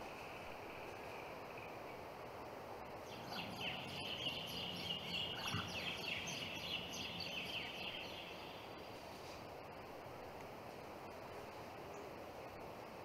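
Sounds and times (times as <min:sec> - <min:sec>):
steady outdoor hiss: 0:00.0 - 0:13.0
bird chirping: 0:03.0 - 0:09.0.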